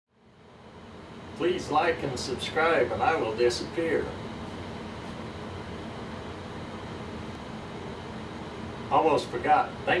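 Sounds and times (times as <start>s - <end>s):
air conditioner hum: 0.1s - 10.0s.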